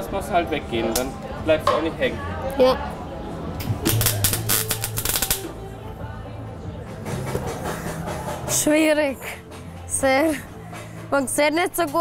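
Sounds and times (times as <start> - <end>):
welding arc crackling: 3.8 - 5.5.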